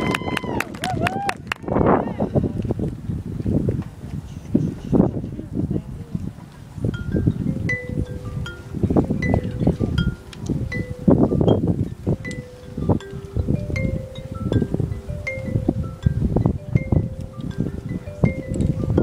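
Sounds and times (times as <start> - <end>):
mallet percussion chiming: 6.9 - 19.0.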